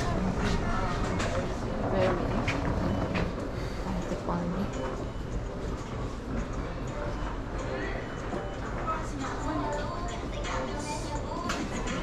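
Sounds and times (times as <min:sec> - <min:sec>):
store rumble and murmur: 0:00.0 - 0:12.0.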